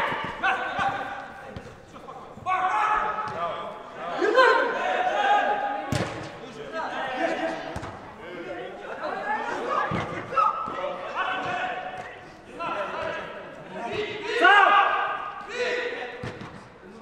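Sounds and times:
footballers shouting in echoing hall: 0.0s - 17.0s.

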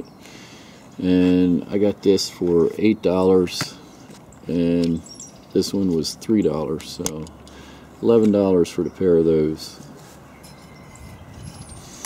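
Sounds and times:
faint outdoor background noise: 0.0s - 12.0s
high chirp: 3.8s - 6.6s, 8.7s - 12.0s.

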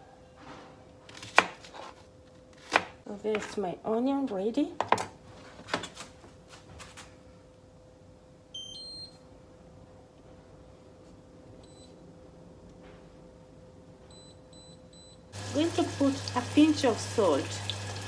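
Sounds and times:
short control beeps: 8.6s - 9.1s.

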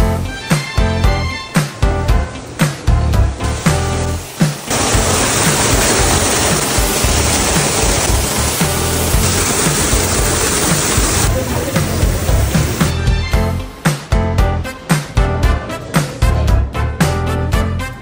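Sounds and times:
background music with steady beat: 0.0s - 18.0s
rushing water of waterfall: 1.4s - 12.9s.

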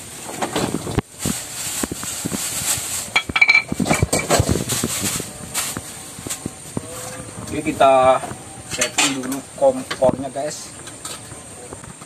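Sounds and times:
metal pots clanking on bamboo floor: 3.1s - 4.7s, 8.7s - 10.2s.

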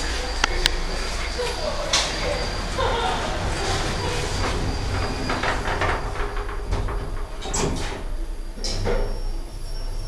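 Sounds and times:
steady low hum: 0.0s - 10.0s
lift doors sliding shut: 1.1s - 9.3s
clattering: 3.5s - 8.1s.

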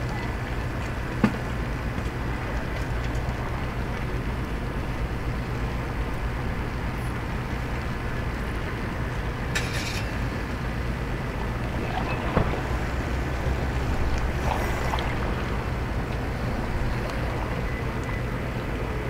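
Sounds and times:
low ship engine rumble: 0.0s - 19.0s.

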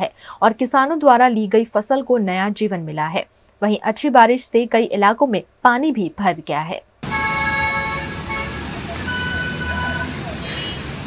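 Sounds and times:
traffic on wet street: 7.0s - 11.0s
vehicle horns: 7.0s - 11.0s.

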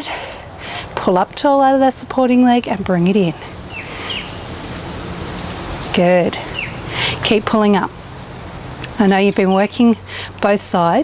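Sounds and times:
outdoor background hiss: 0.0s - 11.0s
high bird chirp: 3.7s - 4.6s, 6.4s - 6.9s.

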